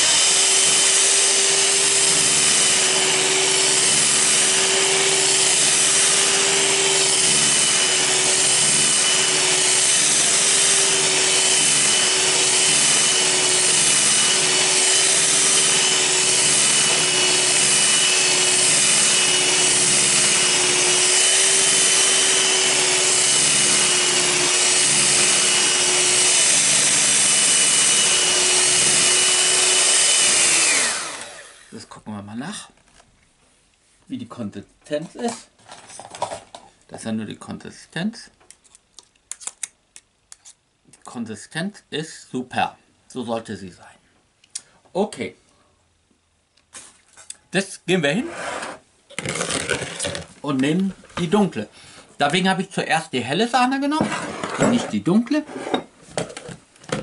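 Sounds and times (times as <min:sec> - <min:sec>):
electric hand mixer running: 0:00.0 - 0:31.7, 0:49.1 - 0:50.3
mixer motor winding down: 0:00.0 - 0:31.8.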